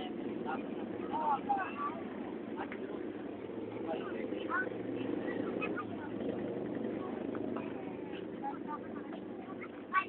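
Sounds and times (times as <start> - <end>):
faint scattered voices: 0.0 - 10.0.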